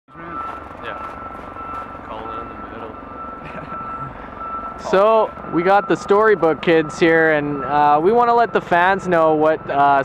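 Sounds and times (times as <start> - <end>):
steady high-pitched tone: 0.2 - 10.0.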